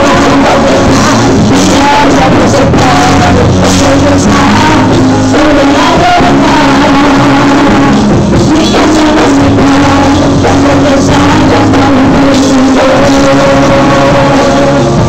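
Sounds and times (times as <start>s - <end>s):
drums: 0.0s - 15.0s
electric bass guitar: 0.0s - 15.0s
women singing into microphones: 0.0s - 15.0s.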